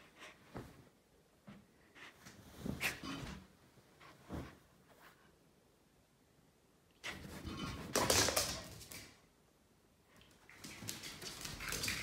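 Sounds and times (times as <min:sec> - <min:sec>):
rustling movement: 0:01.6 - 0:05.4.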